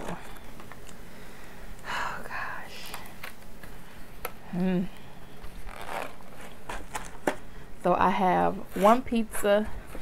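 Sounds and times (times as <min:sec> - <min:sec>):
plastic packs rustling and scraping: 0:05.4 - 0:07.6, 0:08.5 - 0:10.0.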